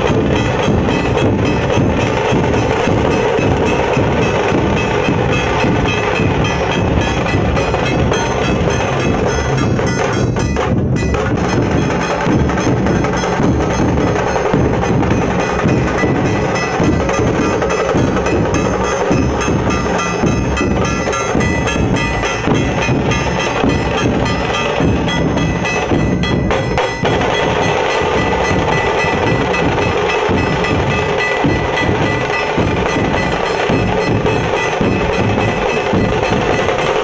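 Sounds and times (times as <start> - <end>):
barrel drums beaten with sticks: 0.0 - 37.0
rapid small drum strokes: 0.0 - 37.0.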